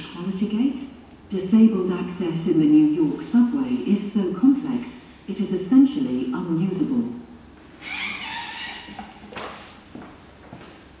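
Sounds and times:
footsteps on hard floor: 8.9s - 10.8s.

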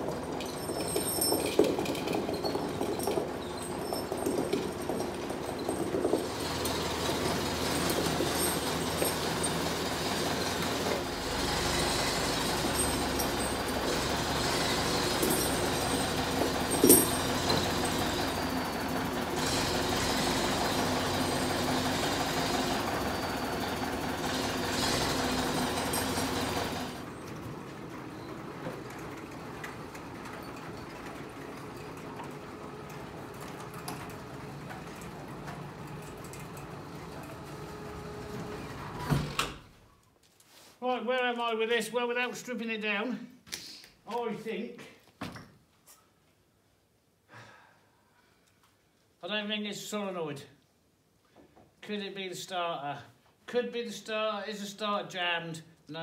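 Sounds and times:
metal clanks: 0.0s - 11.1s, 11.8s - 18.8s
diesel engine running under load: 1.8s - 39.0s.

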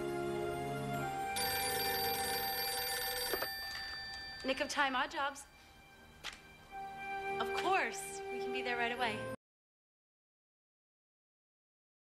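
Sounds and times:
soft background music: 0.0s - 9.4s
desk telephone ringing: 1.3s - 5.0s.

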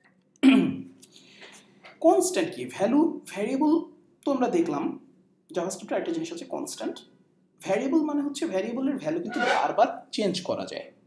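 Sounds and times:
man clearing his throat: 0.4s - 0.8s.

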